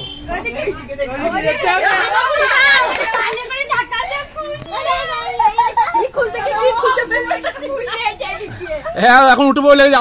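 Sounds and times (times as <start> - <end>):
women and children talking: 0.0 - 10.0.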